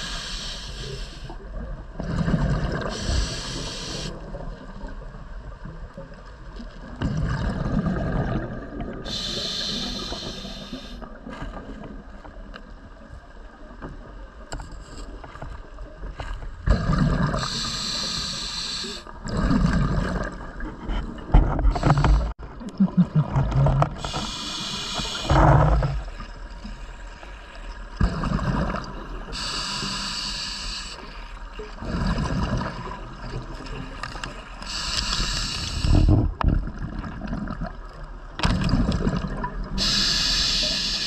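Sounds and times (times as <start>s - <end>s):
regulator breathing hiss: 0.0s - 1.4s, 2.9s - 4.2s, 9.1s - 11.0s, 17.4s - 19.1s, 24.0s - 25.4s, 29.3s - 31.3s, 34.6s - 36.2s, 39.8s - 41.0s.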